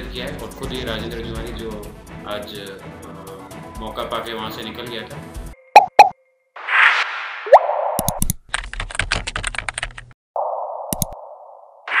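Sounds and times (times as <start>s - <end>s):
keyboard typing: 8.0s - 10.1s
sharp clicks: 10.9s - 11.2s.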